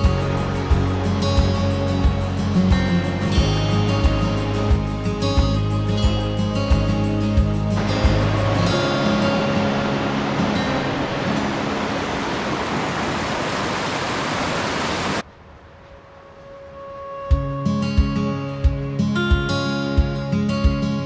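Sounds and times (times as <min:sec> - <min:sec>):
creek rushing over rocks: 0:00.0 - 0:05.0, 0:07.7 - 0:15.2
background music: 0:00.0 - 0:12.2, 0:16.4 - 0:21.0.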